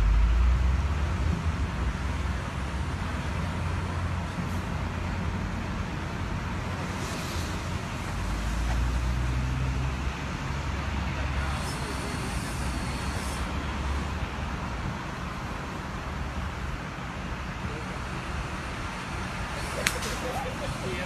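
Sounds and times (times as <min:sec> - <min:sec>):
road traffic noise: 0:00.0 - 0:21.0
vehicle engine rumbling nearby: 0:00.0 - 0:21.0
short high hiss: 0:07.0 - 0:07.7.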